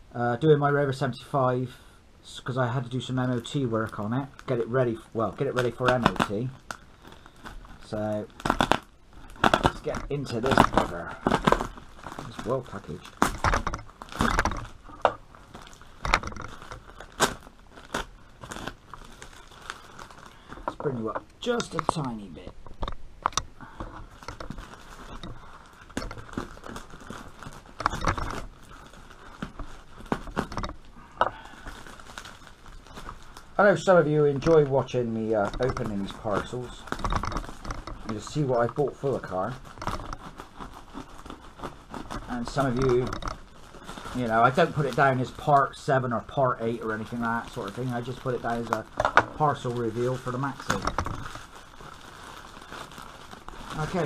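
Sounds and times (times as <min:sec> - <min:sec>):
parcel wrapping crinkling: 0:00.2 - 0:54.0
packing tape and film tearing: 0:02.7 - 0:54.0.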